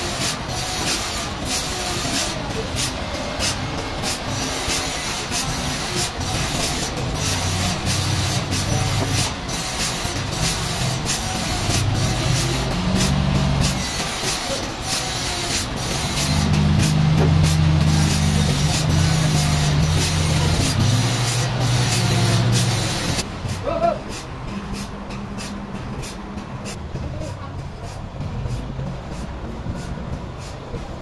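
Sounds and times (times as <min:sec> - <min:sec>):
forklift engine running: 0:00.0 - 0:31.0
steady hiss: 0:00.0 - 0:31.0.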